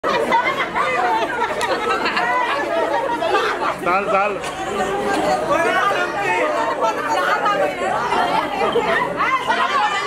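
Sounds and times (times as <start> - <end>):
women chattering and laughing: 0.0 - 10.0.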